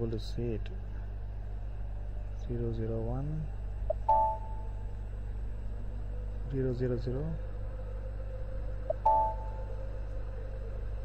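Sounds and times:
low electrical hum: 0.0s - 11.0s
electronic computer chime: 4.0s - 4.6s, 9.0s - 9.5s.

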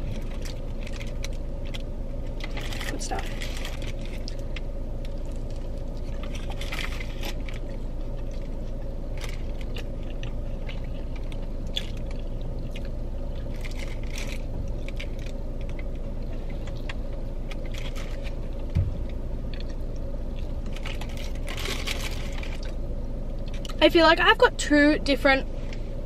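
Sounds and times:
chewing and biting burger: 0.0s - 23.8s
steady low hum: 0.0s - 26.0s
soft thump: 18.7s - 19.0s
paper wrapper crinkling: 20.5s - 22.8s.

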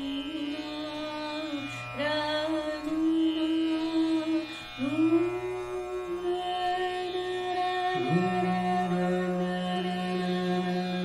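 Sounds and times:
tanpura drone: 0.0s - 11.0s
woman singing long held notes: 0.0s - 11.0s.

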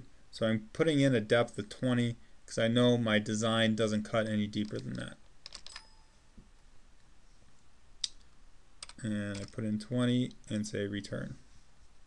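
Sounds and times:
computer keyboard keystrokes: 4.6s - 5.9s, 8.8s - 9.6s.

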